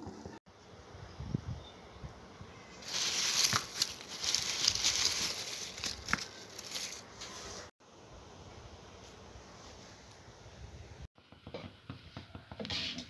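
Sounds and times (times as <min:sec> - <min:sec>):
onion skins rustling: 0:02.8 - 0:07.7
onions knocking together: 0:02.9 - 0:07.0.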